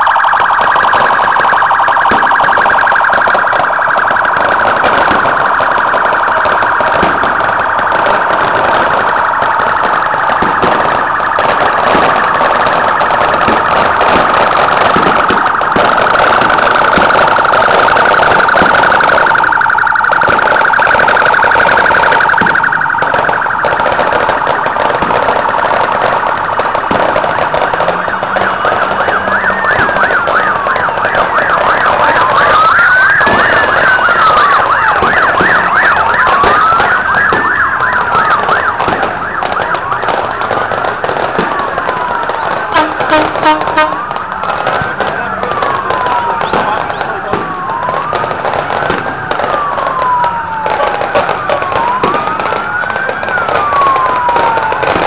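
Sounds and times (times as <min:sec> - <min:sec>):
police siren fast yelp: 0:00.0 - 0:55.0
slow wailing siren: 0:00.0 - 0:55.0.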